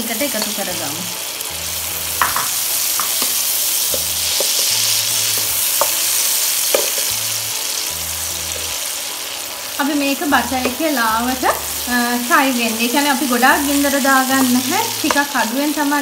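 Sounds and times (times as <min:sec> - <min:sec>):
food sizzling in butter: 0:00.0 - 0:16.0
spatula scraping and tapping pan: 0:02.2 - 0:06.1.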